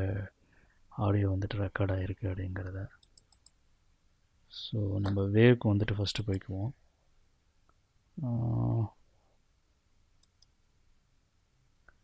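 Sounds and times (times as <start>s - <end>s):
man speaking: 4.5s - 6.8s, 8.2s - 9.0s.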